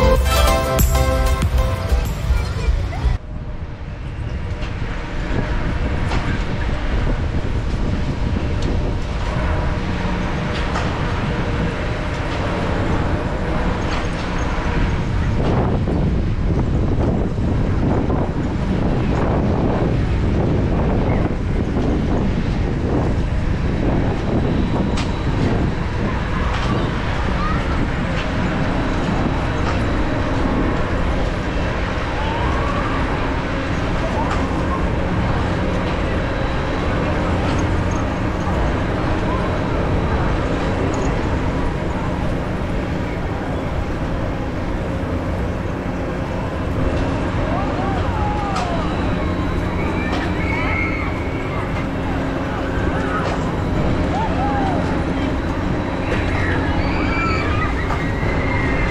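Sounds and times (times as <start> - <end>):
faint mechanical hum: 2.0 - 58.9
wind buffeting microphone: 2.4 - 58.9.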